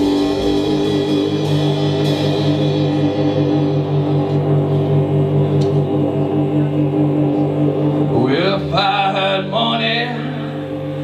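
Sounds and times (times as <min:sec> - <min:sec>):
blues rock band droning chord: 0:00.0 - 0:11.0.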